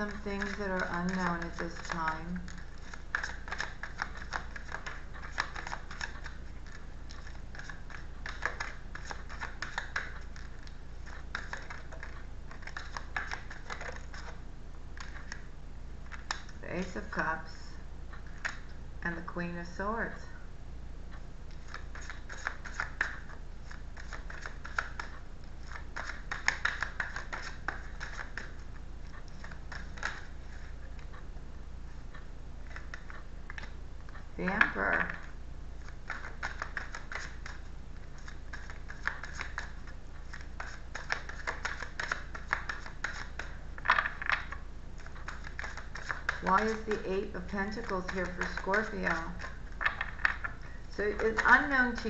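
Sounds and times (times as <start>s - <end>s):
cards shuffling: 0.0s - 14.4s, 15.0s - 15.5s, 16.1s - 16.6s, 21.6s - 31.1s, 32.6s - 33.7s, 34.6s - 52.0s.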